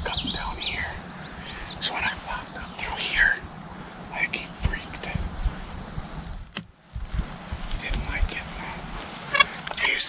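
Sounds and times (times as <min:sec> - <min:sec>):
birds chirping: 0:00.0 - 0:06.4, 0:07.0 - 0:10.0
wind rumble on microphone: 0:00.0 - 0:09.8
sharp click: 0:06.5 - 0:06.7.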